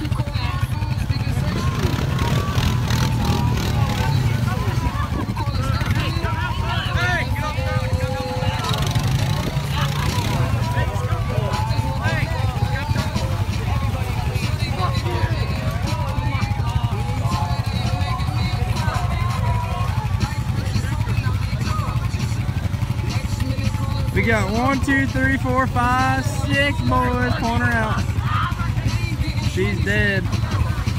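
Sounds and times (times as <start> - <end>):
quad bike engine idling: 0.0 - 30.9
people shouting: 2.2 - 21.3.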